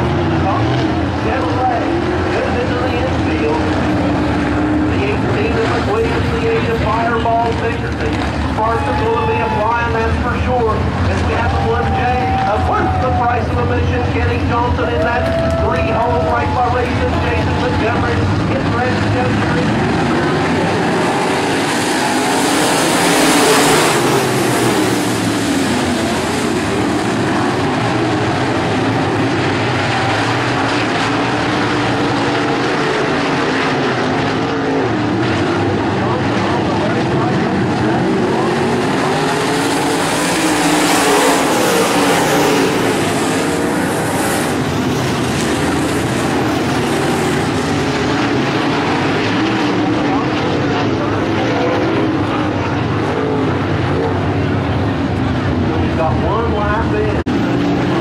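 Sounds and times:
race car engines passing by: 0.0s - 58.0s.

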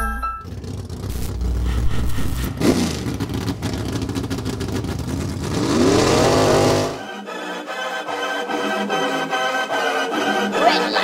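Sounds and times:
car engine revving: 0.5s - 7.1s.

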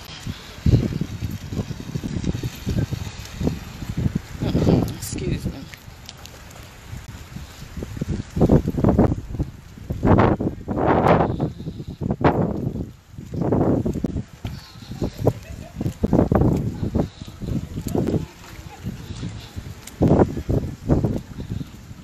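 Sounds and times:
low wind or car rumble: 0.0s - 22.0s.

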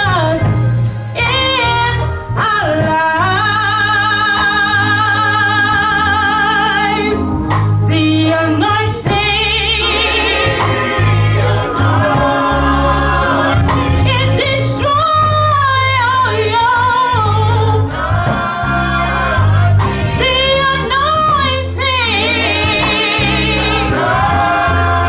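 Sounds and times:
bass line: 0.0s - 25.0s
drums: 0.0s - 25.0s
woman singing with vibrato: 7.9s - 12.6s, 13.5s - 18.6s, 20.1s - 24.1s.

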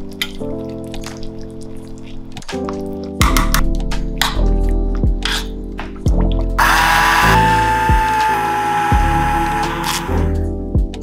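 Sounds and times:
background music: 0.0s - 11.0s
stick blender motor whining: 6.6s - 10.4s.

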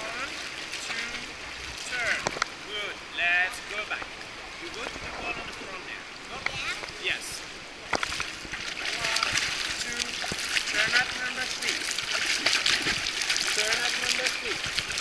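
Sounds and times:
water splashing from swimming: 0.0s - 2.9s, 3.6s - 15.0s.

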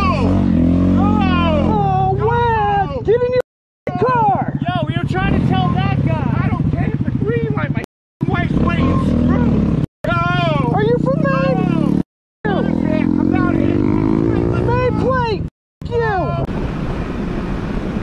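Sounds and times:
loud shouting voices: 0.0s - 3.2s
motorcycle engine idling: 4.0s - 11.0s.

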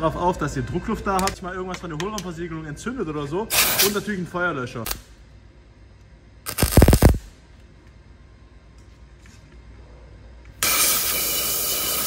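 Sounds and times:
welder arc crackling: 6.4s - 7.4s
loud steady hiss: 6.5s - 7.3s.

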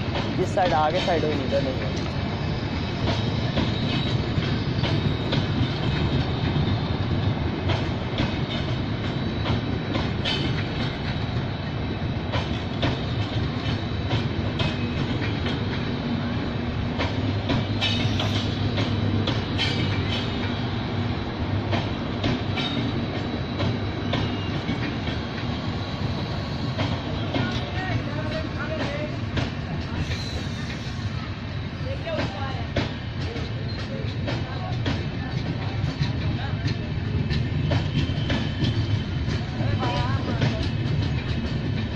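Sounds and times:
wheels clacking over rail joints: 0.0s - 25.6s
train wheels rumbling on rails: 0.0s - 41.9s.

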